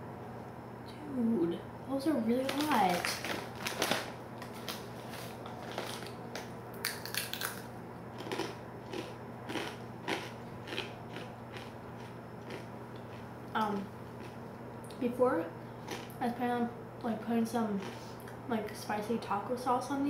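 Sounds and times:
chewing crisp tortilla chips: 2.4s - 15.0s, 15.8s - 16.2s, 17.8s - 18.4s.

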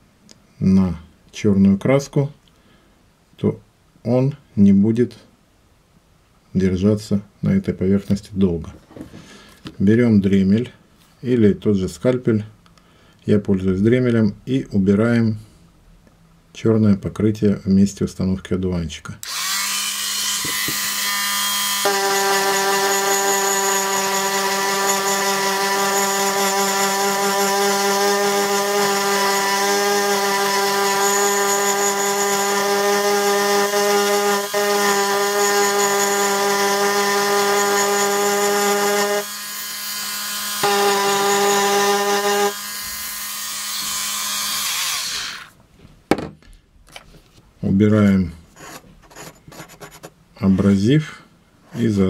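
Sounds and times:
rotary tool grinding metal: 19.2s - 45.5s.

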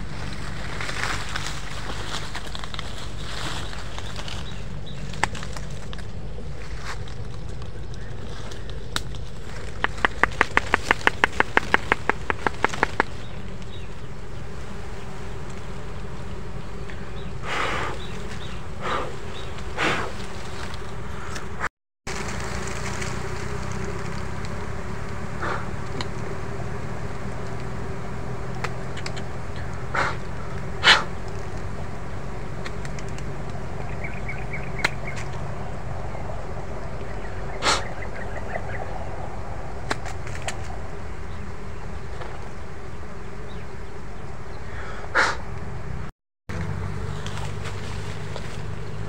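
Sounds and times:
honeybees buzzing: 0.0s - 49.0s.

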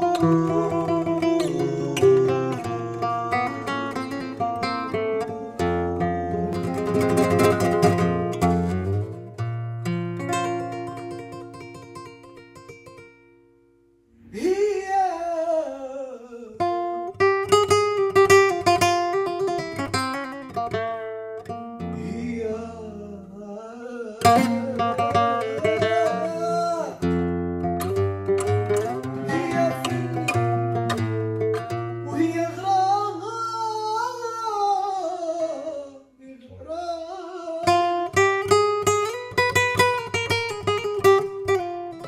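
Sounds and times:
person singing wavering vocal line: 0.0s - 7.1s, 14.2s - 16.8s, 22.0s - 27.0s, 28.8s - 30.6s, 32.1s - 38.0s
flamenco guitar playing: 0.0s - 15.0s, 16.6s - 23.4s, 24.2s - 35.8s, 36.7s - 42.0s.

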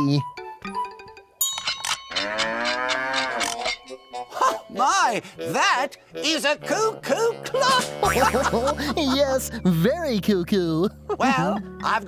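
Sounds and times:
cow moo from clock: 2.1s - 3.8s.

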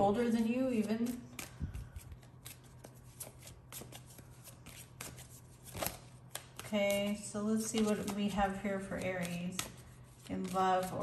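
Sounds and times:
cards being shuffled: 0.7s - 11.0s.

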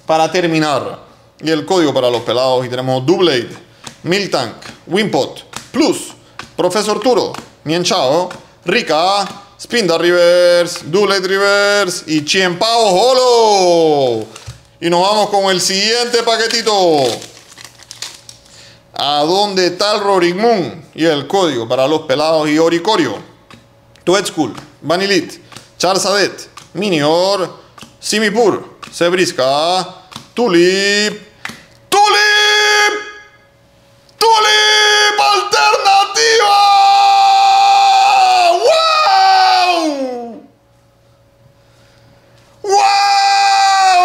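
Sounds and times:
foil wrapper tearing and crinkling: 14.1s - 14.7s, 16.0s - 18.6s
man screaming: 31.9s - 33.2s, 34.2s - 40.5s, 42.6s - 44.0s.

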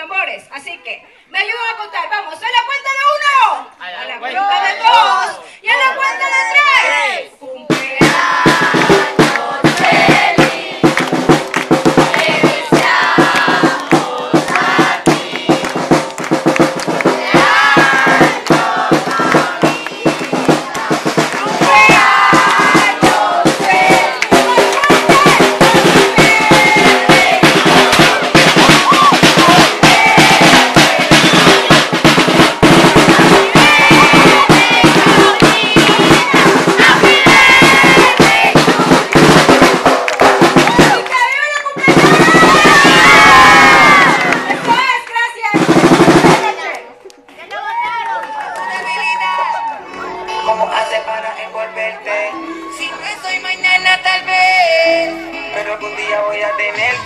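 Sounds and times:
crowd singing and shouting: 3.8s - 45.0s, 48.6s - 57.0s
drums playing fast beat: 7.6s - 46.7s.

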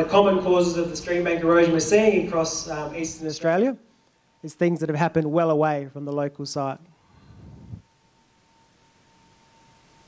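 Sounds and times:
faint hiss: 6.4s - 10.0s.

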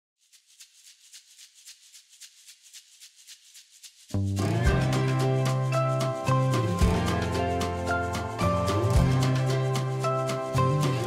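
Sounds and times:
shaker playing even rhythm: 0.2s - 11.0s.

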